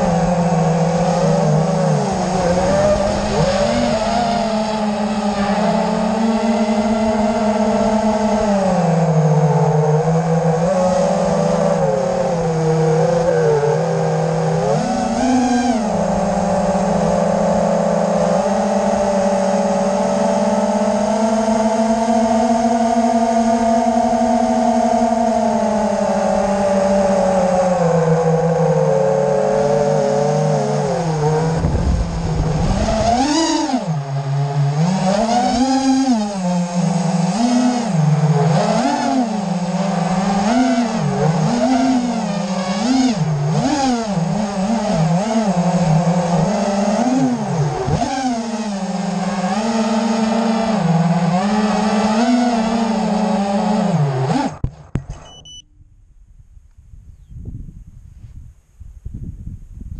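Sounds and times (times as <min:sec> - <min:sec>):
quadcopter motors buzzing: 0:00.0 - 0:55.6.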